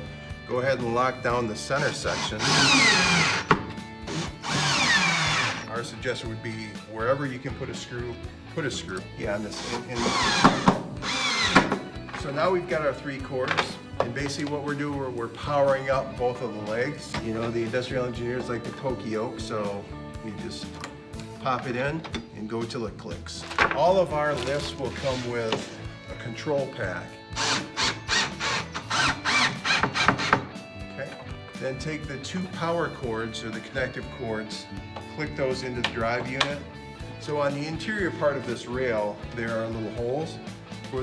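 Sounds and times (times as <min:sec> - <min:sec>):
cordless drill motor whine: 0:02.1 - 0:05.7, 0:09.6 - 0:11.7, 0:27.4 - 0:30.3.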